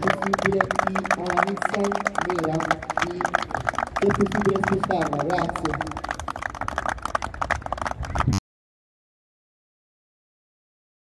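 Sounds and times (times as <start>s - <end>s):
group applauding: 0.0s - 8.4s.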